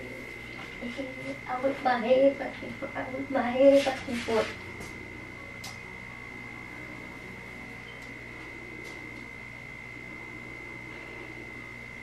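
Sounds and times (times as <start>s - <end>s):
high-pitched electrical whine: 0.0s - 12.0s
low hum: 0.0s - 12.0s.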